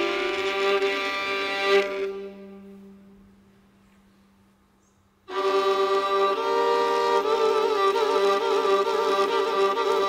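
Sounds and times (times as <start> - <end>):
held violin note: 0.0 - 3.5, 5.3 - 10.0
fiddle and band sustained chord: 0.0 - 3.6, 5.3 - 10.0.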